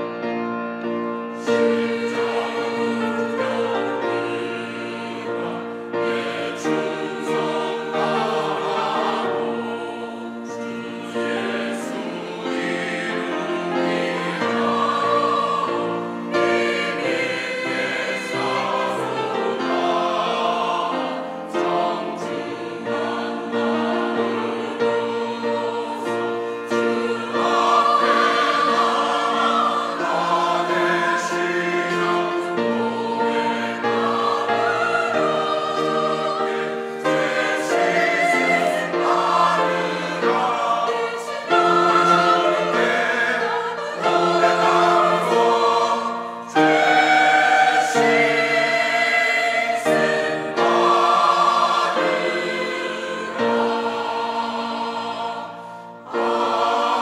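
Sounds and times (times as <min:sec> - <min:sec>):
choir singing a hymn: 0:00.0 - 0:57.0
piano accompaniment: 0:00.0 - 0:57.0.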